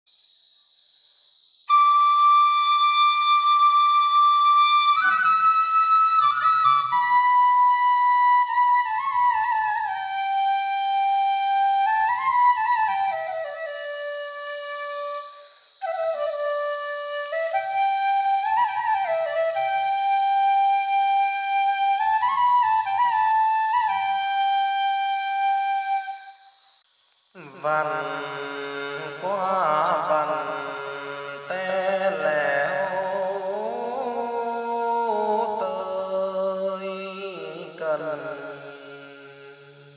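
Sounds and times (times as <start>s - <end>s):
solo flute melody: 1.7s - 26.5s.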